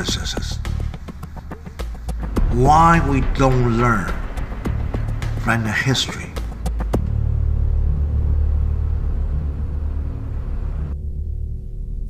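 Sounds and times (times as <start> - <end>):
low rumbling drone music: 0.0 - 12.0.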